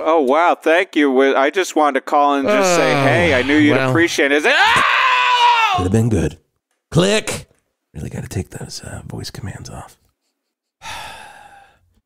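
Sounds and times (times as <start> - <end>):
man sighing: 10.8 - 11.8.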